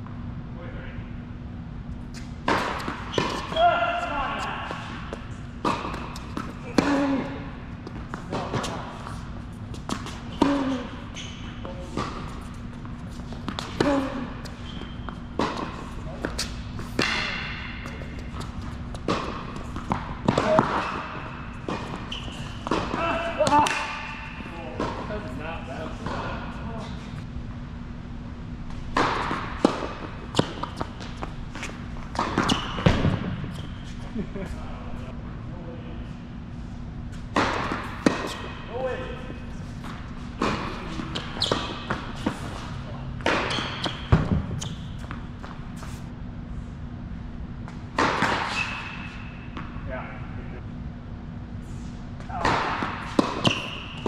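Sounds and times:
steady low hum: 0:00.0 - 0:54.0
tennis ball bounces: 0:04.6 - 0:07.1, 0:07.8 - 0:10.5, 0:11.8 - 0:25.1, 0:28.8 - 0:33.7, 0:52.4 - 0:54.0
tennis racket strikes: 0:13.4 - 0:18.0.

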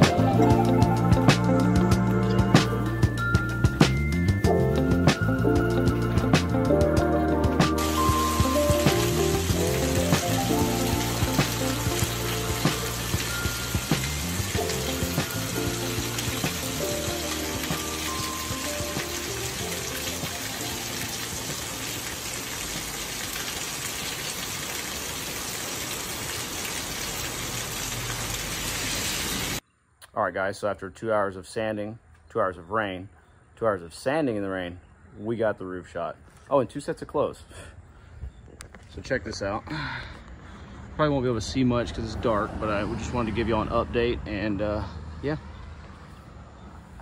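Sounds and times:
background music: 0:00.0 - 0:22.2
heavy rain: 0:06.9 - 0:29.6.

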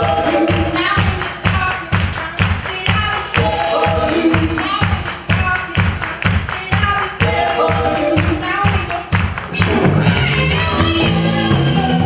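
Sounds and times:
live band playing upbeat song: 0:00.0 - 0:05.4, 0:06.8 - 0:12.0
person singing: 0:00.0 - 0:12.0
hand claps: 0:00.5 - 0:09.8.

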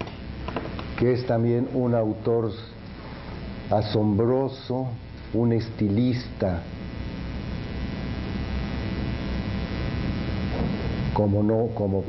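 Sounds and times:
low electrical hum: 0:00.0 - 0:12.0
steady hiss: 0:00.0 - 0:12.0.

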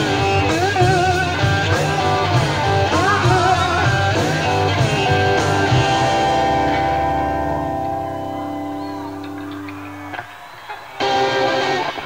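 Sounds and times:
electric guitar and bass chord: 0:00.0 - 0:10.2
rock band playing: 0:00.0 - 0:12.0.

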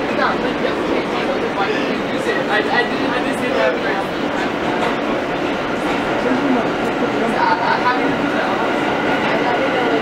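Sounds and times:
subway car wheels rumbling on rail: 0:00.0 - 0:10.0.

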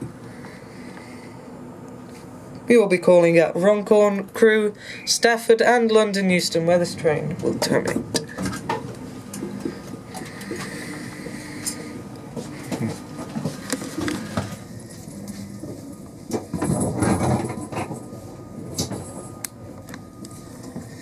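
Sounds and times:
train cabin ambience: 0:00.0 - 0:21.0.

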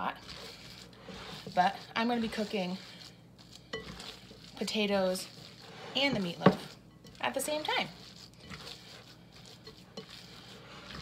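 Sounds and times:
hand squishing raw meat mixture: 0:00.0 - 0:11.0.

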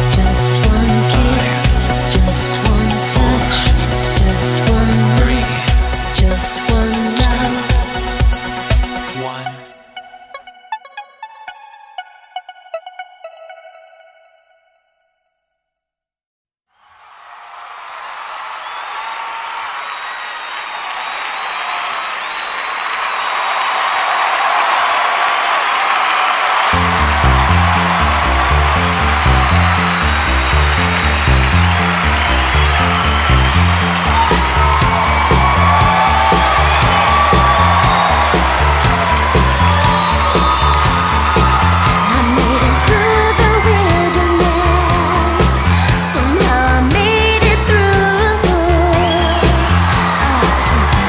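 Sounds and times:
pulsing bass line and beat: 0:00.0 - 0:09.2, 0:26.8 - 0:51.0.

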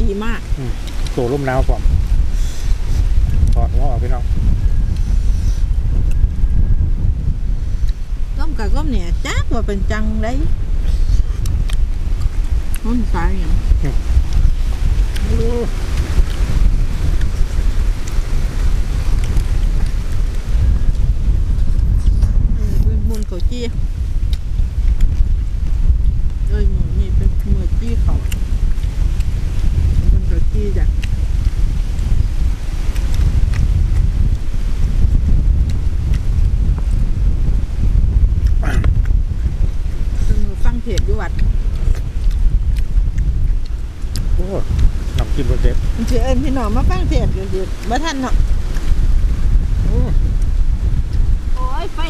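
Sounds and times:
wind buffeting microphone: 0:00.0 - 0:52.0.

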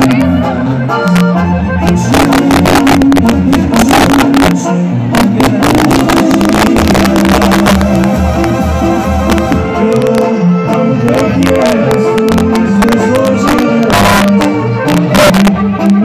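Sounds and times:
drums keeping a steady beat: 0:00.0 - 0:10.2
brass band playing loudly: 0:00.0 - 0:16.0
trombones: 0:00.0 - 0:16.0
tuba bass line: 0:00.0 - 0:16.0.

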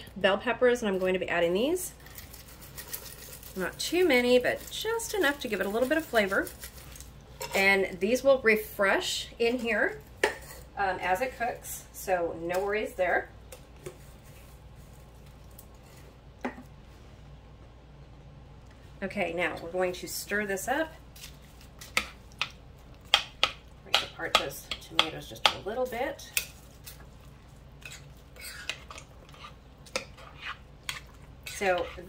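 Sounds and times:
spoon scraping thick chili: 0:26.3 - 0:32.0.

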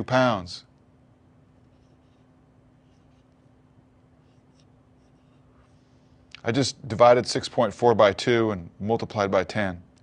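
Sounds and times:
steady low hum: 0:00.0 - 0:10.0
marker writing on a whiteboard: 0:01.6 - 0:06.0.

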